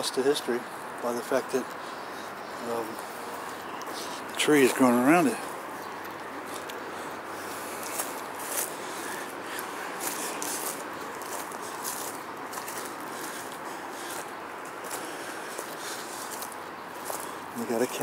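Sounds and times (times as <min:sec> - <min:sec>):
outdoor background noise: 0:00.0 - 0:18.0
footsteps crunching through dry leaves: 0:00.6 - 0:18.0.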